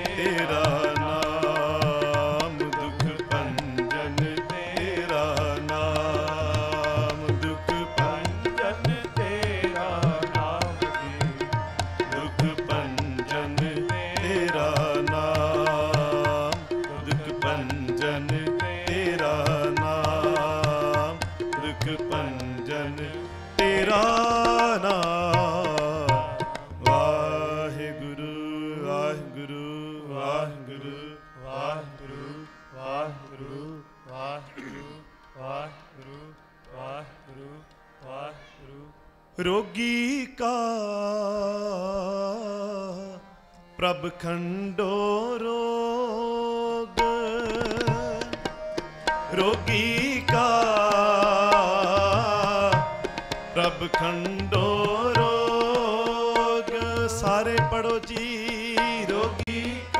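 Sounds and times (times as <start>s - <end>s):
men singing: 0.0s - 43.2s, 43.8s - 59.9s
harmonium sustained notes: 0.0s - 59.9s.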